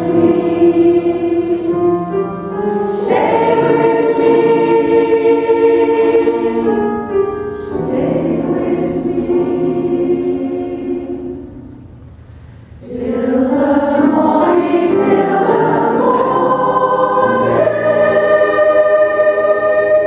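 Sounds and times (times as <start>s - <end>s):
women's choir singing: 0.0s - 11.7s, 12.8s - 20.0s.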